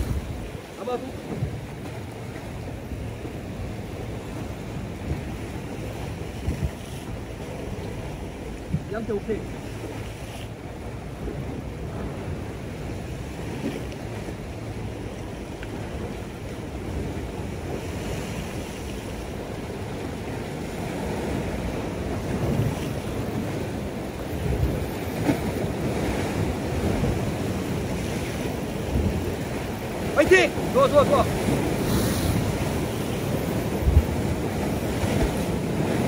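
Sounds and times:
sea surf against rocks: 0.0s - 36.0s
wind buffeting microphone: 0.0s - 36.0s.

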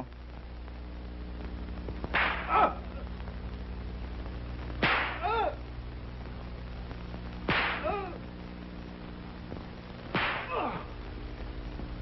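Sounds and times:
whip cracking: 2.1s - 2.6s, 4.8s - 5.4s, 7.5s - 8.0s, 10.1s - 10.8s
man crying out in pain: 2.5s - 3.0s, 5.2s - 5.6s, 7.8s - 8.2s.

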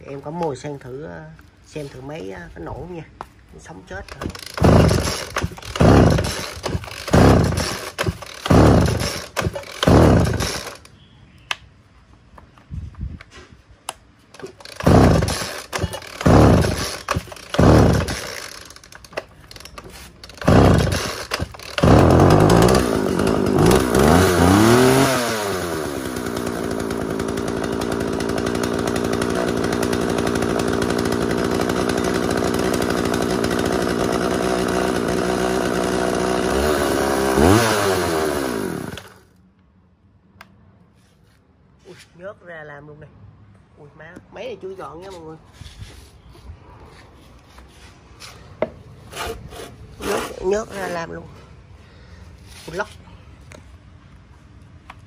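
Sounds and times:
chainsaw pull cord: 3.9s - 10.9s, 14.3s - 39.4s, 49.1s - 51.2s
chainsaw engine revving and idling: 4.0s - 10.9s, 14.4s - 39.4s, 50.0s - 51.2s.

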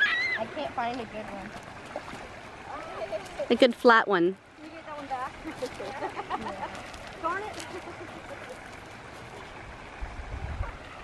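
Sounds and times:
faint outdoor hiss: 0.0s - 11.0s
low rumble on microphone: 9.7s - 11.0s.

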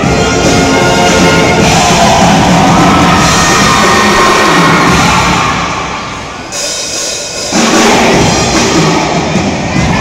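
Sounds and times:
marching band brass and drums: 0.0s - 10.0s.

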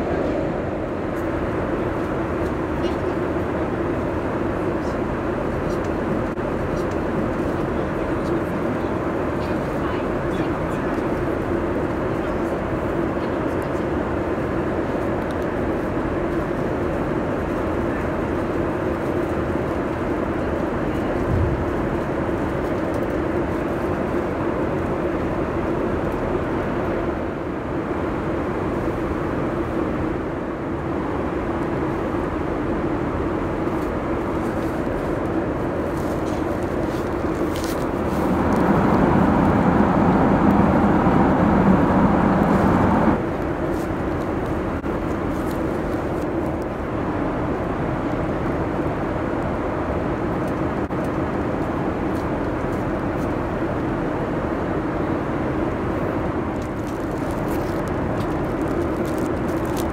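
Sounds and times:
airplane cabin engine rush: 0.0s - 59.9s.

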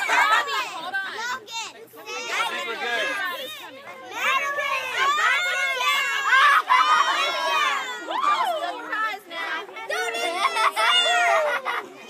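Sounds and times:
children shouting and talking: 0.0s - 12.0s.

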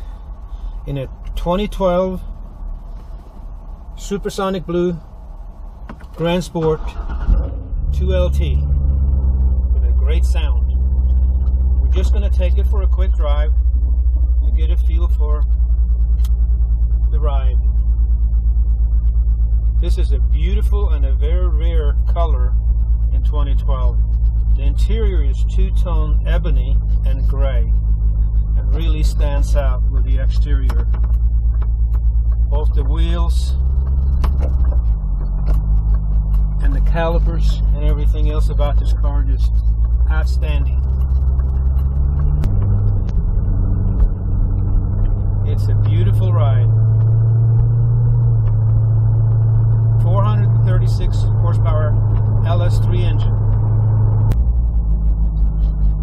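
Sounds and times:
car engine rumbling at low revs: 0.0s - 56.0s
road noise: 0.0s - 56.0s.

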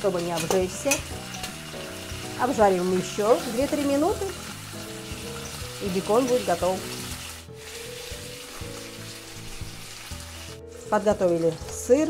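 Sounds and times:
pork sizzling in a frying pan: 0.0s - 12.0s.

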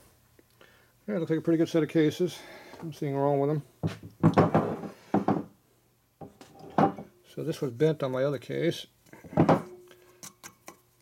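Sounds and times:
metal parts knocking on workbench: 4.2s - 5.5s, 6.2s - 7.1s.

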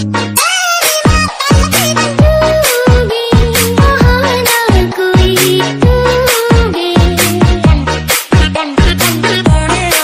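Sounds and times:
dance remix with fast beat: 0.0s - 10.0s.

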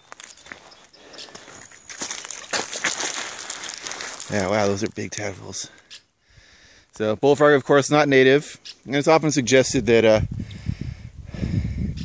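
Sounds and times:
footsteps crunching on gritty ground: 0.0s - 5.8s.

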